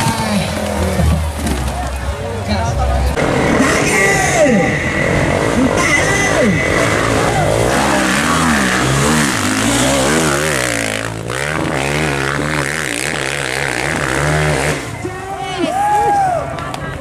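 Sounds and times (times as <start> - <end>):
motorcycle engine revving: 3.2 - 15.1.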